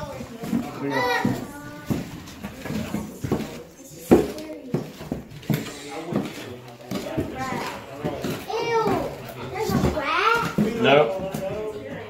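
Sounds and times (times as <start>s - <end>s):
boot footsteps on wooden stairs: 0.0s - 12.0s
children chattering: 0.0s - 12.0s.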